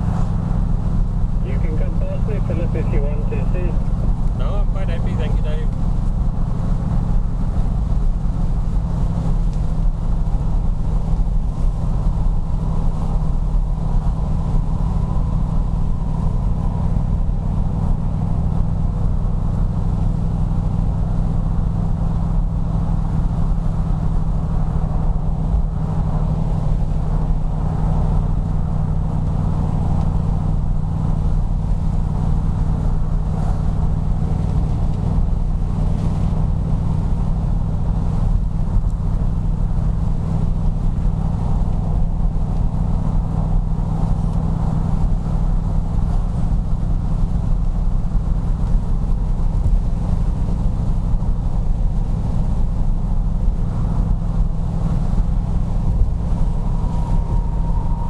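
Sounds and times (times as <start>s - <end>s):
car engine deep throb: 0.0s - 58.0s.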